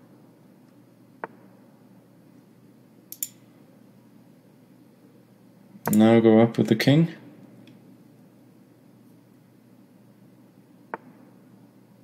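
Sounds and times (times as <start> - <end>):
room hum: 0.0 - 12.0
sharp click: 3.1 - 3.4, 5.8 - 6.1.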